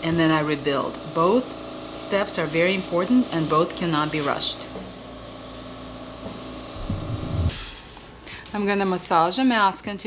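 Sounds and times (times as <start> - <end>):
airbrush gun hissing: 0.0 - 7.7
low knocks: 6.8 - 7.8.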